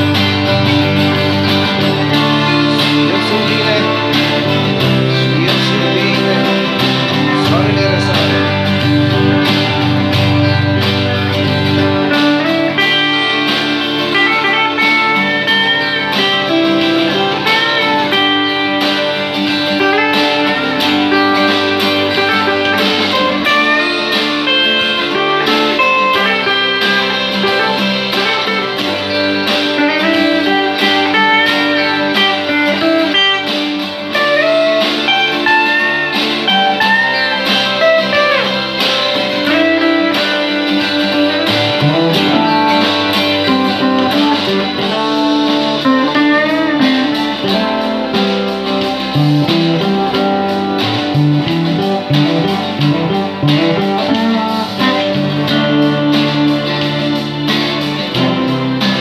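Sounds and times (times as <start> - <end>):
electric guitar melody: 0.0 - 59.0
low bass part: 0.0 - 59.0.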